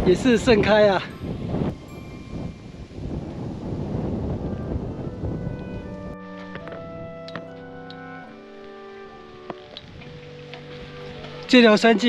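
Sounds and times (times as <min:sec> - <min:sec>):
faint background music: 0:00.0 - 0:12.0
wind buffeting microphone: 0:00.0 - 0:12.0.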